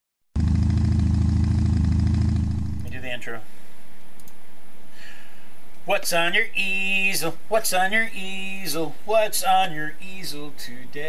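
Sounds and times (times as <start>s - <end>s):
motorcycle engine idling: 0.4s - 3.0s.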